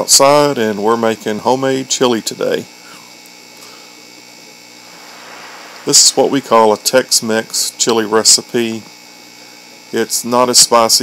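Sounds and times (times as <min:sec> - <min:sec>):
steady background hum: 0:01.5 - 0:09.8.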